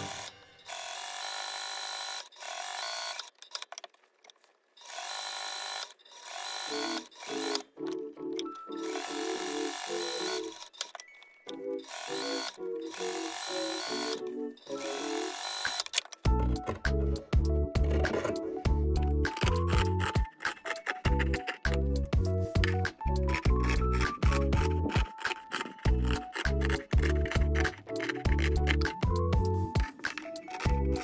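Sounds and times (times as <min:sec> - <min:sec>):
sewing machine stitching: 0:23.3 - 0:29.0.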